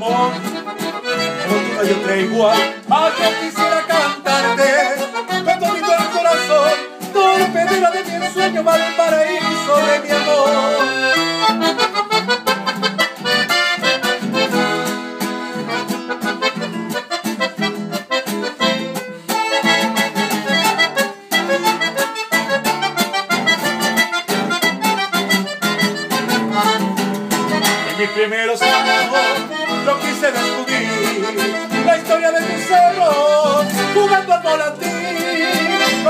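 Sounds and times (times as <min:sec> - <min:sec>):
piano accordion melody: 0:00.0 - 0:36.0
strummed acoustic guitar: 0:00.0 - 0:36.0.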